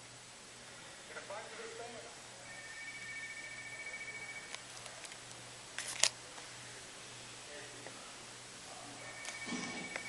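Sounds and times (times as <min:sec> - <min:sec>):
two-note electronic tone: 0:09.0 - 0:10.0.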